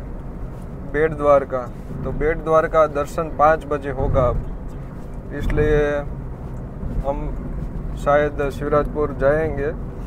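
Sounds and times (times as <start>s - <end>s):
car interior road and engine rumble: 0.0s - 10.0s.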